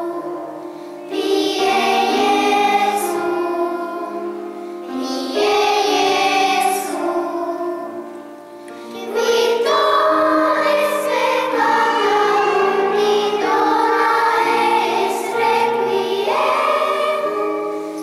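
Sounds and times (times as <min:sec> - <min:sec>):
children's choir singing: 0:00.0 - 0:18.0.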